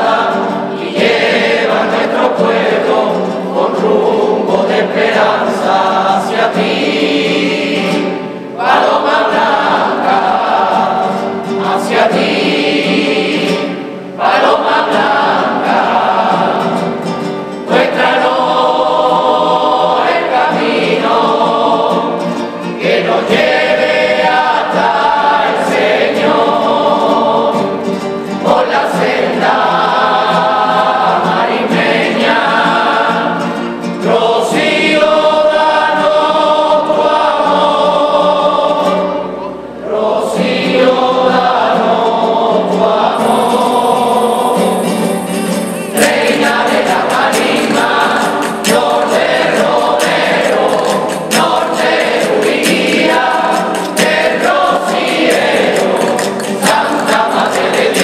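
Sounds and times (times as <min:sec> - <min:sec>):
group of men and women singing: 0:00.0 - 0:58.0
strummed guitars: 0:00.0 - 0:58.0.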